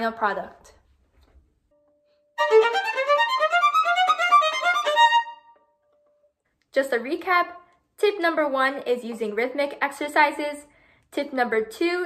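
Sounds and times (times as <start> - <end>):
solo violin playing fast notes: 2.4 - 5.6.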